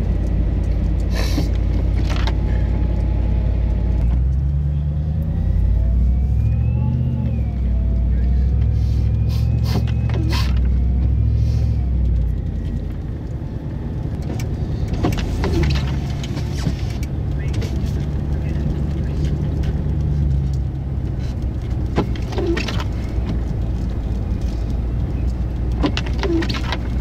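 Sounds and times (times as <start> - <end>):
car engine and tyre hum: 0.0 - 27.0.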